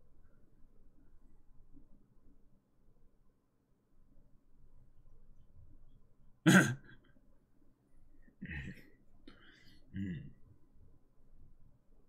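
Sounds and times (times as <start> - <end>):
man clearing throat: 6.5 - 7.0, 8.4 - 8.8, 9.9 - 10.4.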